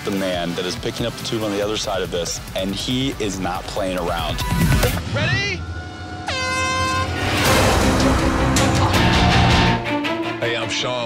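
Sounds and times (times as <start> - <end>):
air horn blast: 5.9 - 8.8.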